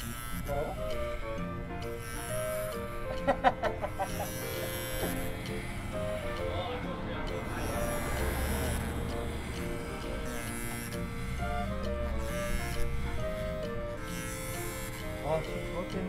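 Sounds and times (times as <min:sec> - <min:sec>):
background music: 0:00.0 - 0:16.0
electric hair clippers buzzing: 0:00.0 - 0:16.0.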